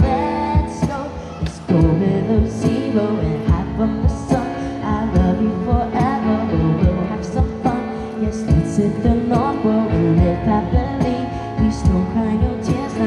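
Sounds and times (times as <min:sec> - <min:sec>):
keyboard melody over chords: 0:00.0 - 0:13.0.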